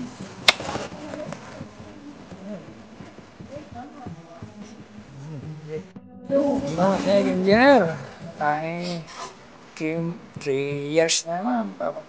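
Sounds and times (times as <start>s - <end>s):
faint voices talking: 0.0s - 12.0s.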